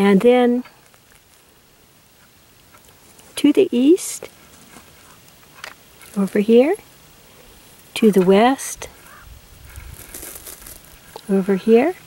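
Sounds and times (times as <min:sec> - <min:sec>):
crackling of needle litter: 0:00.0 - 0:12.0.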